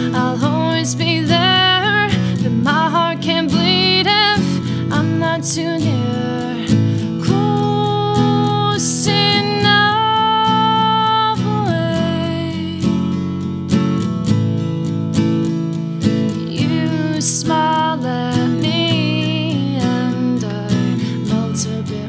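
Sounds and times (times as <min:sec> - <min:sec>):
woman singing: 0:00.0 - 0:13.3, 0:16.3 - 0:22.0
strummed acoustic guitar: 0:00.0 - 0:22.0.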